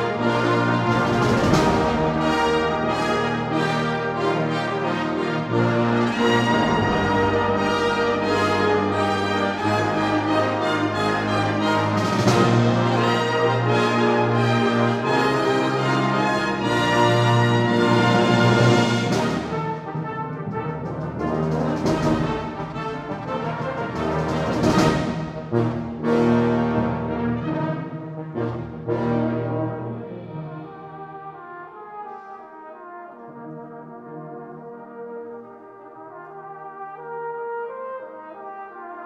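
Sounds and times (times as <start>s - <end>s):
brass band playing chords: 0.0s - 39.0s
sharp drum strikes: 6.4s - 8.5s.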